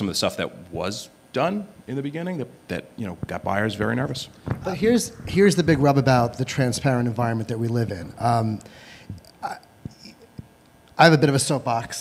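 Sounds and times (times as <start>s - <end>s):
man speaking into a microphone: 0.0s - 8.7s.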